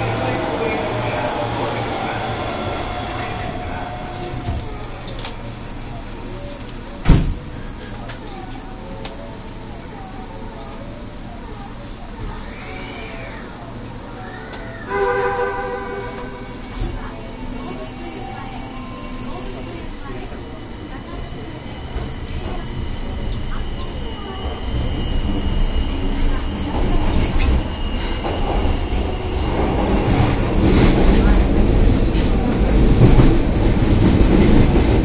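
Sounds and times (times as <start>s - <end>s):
train car interior noise: 0.0s - 35.0s.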